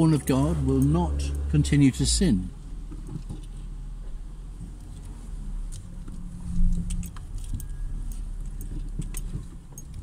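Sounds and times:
engine and road rumble: 0.0 - 10.0.

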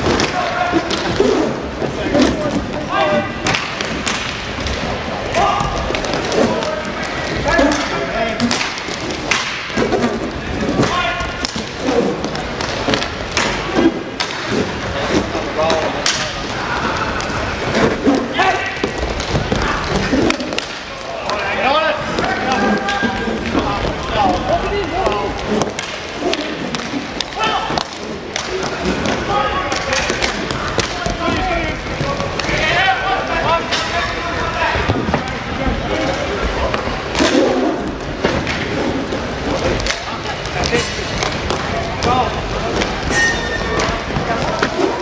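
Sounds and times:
hockey sticks and puck clacking: 0.0 - 45.0
sticks and puck knocking: 3.4 - 21.4
players shouting: 15.6 - 35.4.

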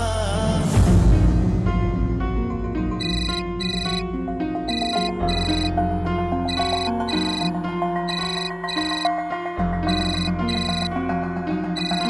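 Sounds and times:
background music low notes: 0.0 - 12.0
phone ringtone beeps: 3.0 - 4.0, 4.7 - 5.8, 6.5 - 9.2, 9.9 - 11.0, 11.8 - 12.0.

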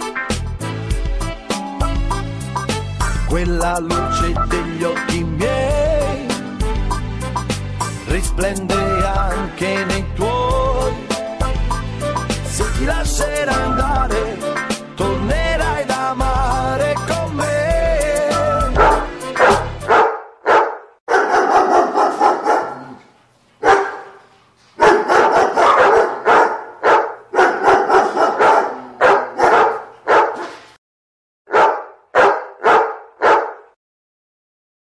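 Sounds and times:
dog barking: 18.8 - 23.0, 23.6 - 24.2, 24.8 - 30.6, 31.5 - 33.8.

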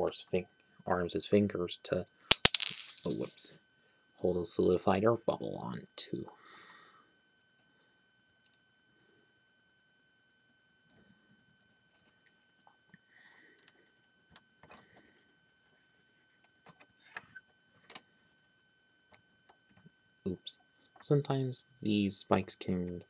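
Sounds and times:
faint high-pitched whine: 0.0 - 23.0.

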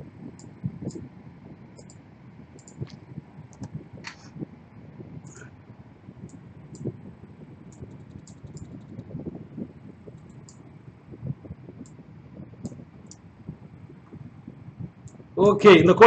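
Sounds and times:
computer keyboard typing: 7.7 - 9.1.

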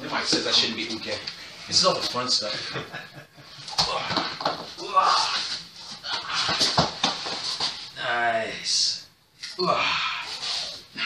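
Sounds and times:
laughter: 2.6 - 3.6
body thumping onto floor mats: 3.7 - 7.9.

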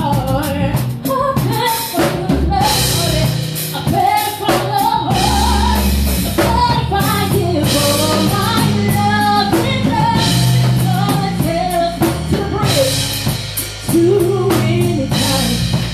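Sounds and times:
drum kit: 0.0 - 15.9
steady bass line: 0.0 - 15.9
woman singing lead: 0.0 - 15.9.

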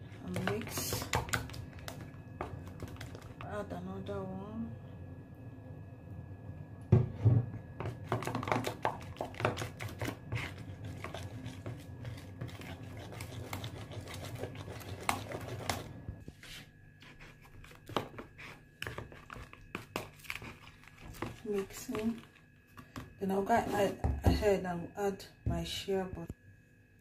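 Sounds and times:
metal spoon scraping paste: 8.1 - 24.0.

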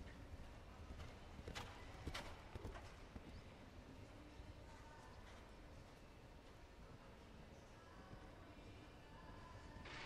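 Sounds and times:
horse hoofbeats on sand: 0.0 - 3.5.

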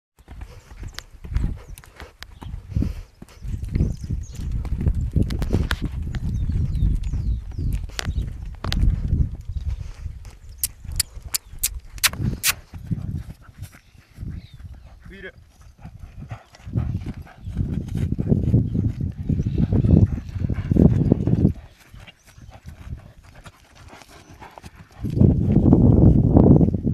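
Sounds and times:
horse hoofbeats cantering: 0.2 - 9.6, 12.0 - 26.9
sharp clicks: 10.6 - 12.6.

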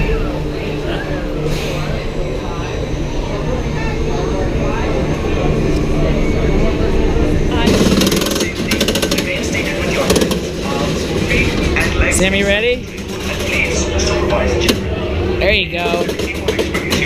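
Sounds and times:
crowd chatter: 0.0 - 17.0
fast mechanical rattling: 7.5 - 17.0.

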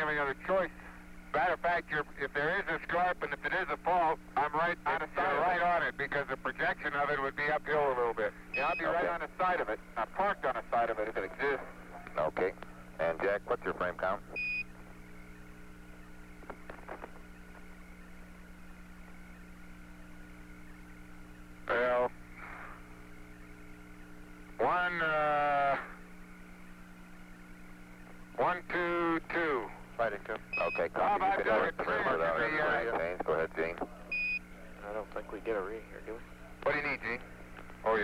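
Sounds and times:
indistinct radio voices: 0.0 - 38.0
radio line hum and hiss: 0.0 - 38.0.

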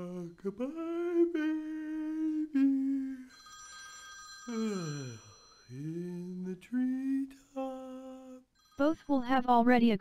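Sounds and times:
person humming long notes: 0.0 - 3.3, 4.5 - 5.2, 5.8 - 8.4.

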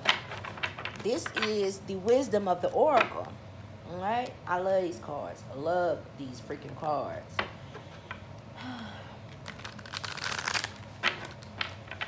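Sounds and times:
cards rustling while shuffled: 9.2 - 12.0.

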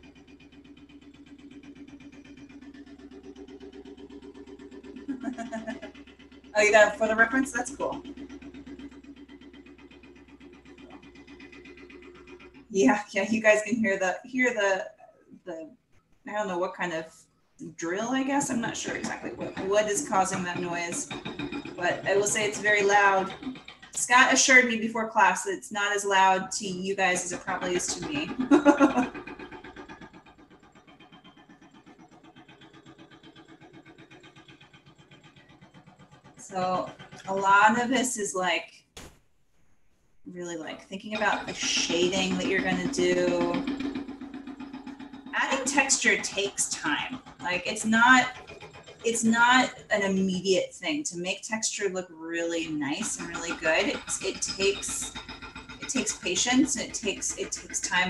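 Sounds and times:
pulsing machine noise: 0.0 - 14.2, 16.0 - 25.4, 26.0 - 38.2, 40.4 - 50.5, 52.6 - 58.0.

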